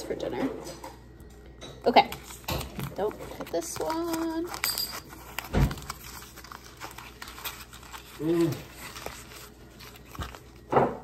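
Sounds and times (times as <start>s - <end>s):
package clicks and rustles: 2.1s - 11.0s.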